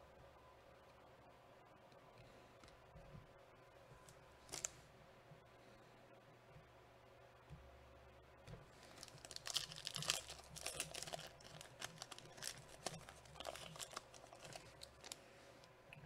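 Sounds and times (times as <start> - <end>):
foil wrapper crinkling and tearing: 4.4 - 4.8, 8.8 - 15.2.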